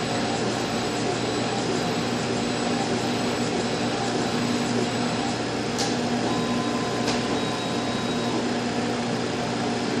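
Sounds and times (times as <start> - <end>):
fans whirring with low hum: 0.0 - 10.0.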